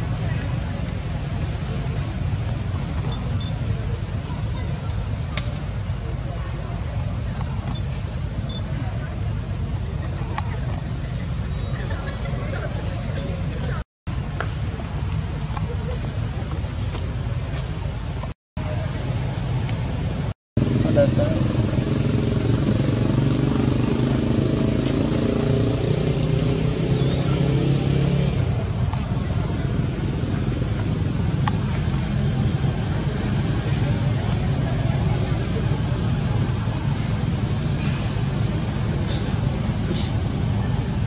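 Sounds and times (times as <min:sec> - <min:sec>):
people talking: 0:00.0 - 0:13.8, 0:14.4 - 0:23.1, 0:26.4 - 0:41.0.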